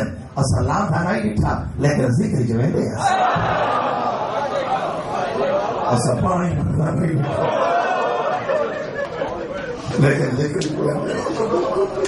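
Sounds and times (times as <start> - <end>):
man talking into a microphone: 0.0 - 3.1, 5.9 - 7.4, 9.8 - 11.4.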